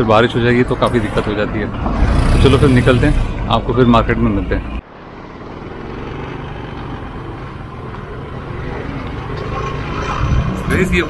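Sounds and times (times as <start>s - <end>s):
road hum: 0.0s - 11.0s.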